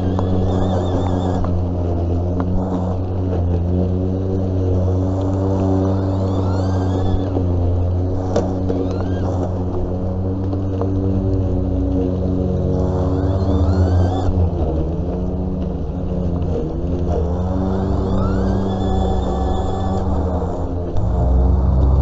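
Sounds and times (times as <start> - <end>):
electric lawn mower motor whine: 0.0 - 22.0.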